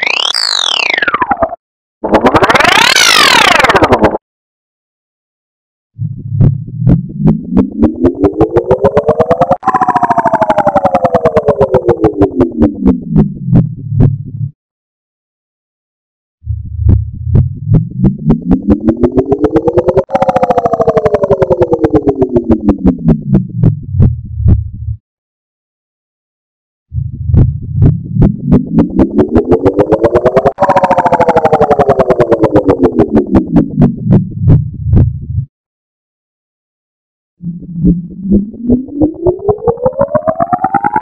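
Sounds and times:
low droning tone rising in pitch: 6.0s - 14.5s, 16.4s - 25.0s, 26.9s - 35.5s, 37.4s - 41.0s.

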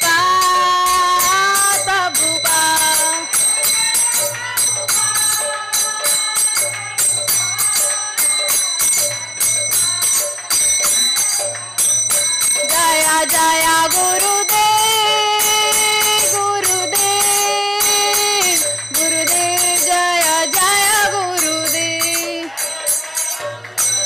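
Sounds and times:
hand cymbals ringing: 0.0s - 24.0s
woman singing a chant: 0.0s - 24.0s.

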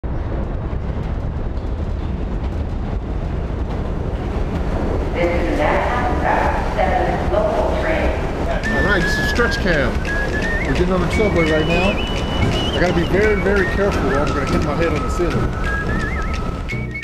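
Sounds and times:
subway train rumble: 0.0s - 17.0s
wavering high tones: 8.5s - 17.0s.

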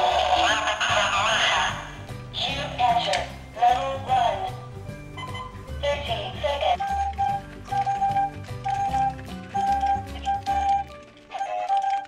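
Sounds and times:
electronic toy game music: 0.0s - 12.0s.

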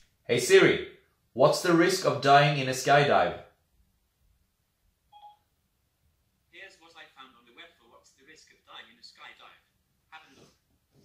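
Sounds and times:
faint electronic chime: 5.1s - 5.4s.

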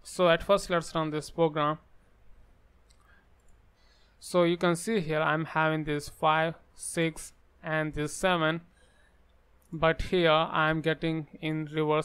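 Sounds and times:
faint computer clicks: 2.8s - 3.6s.

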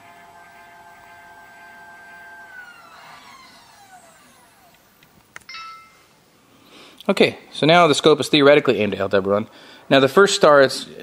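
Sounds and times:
telescope mount motors whining: 0.0s - 5.4s.

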